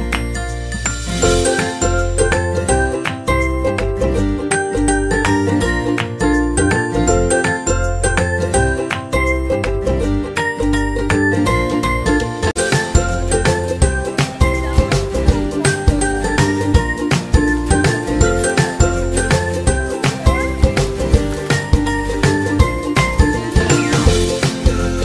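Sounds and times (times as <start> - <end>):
background music with steady beat: 0.0 - 25.0.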